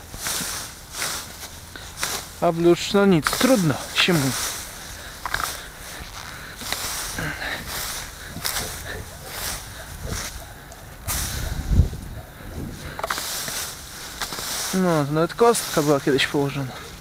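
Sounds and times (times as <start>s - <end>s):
rake scraping through dry grass: 0.0s - 17.0s.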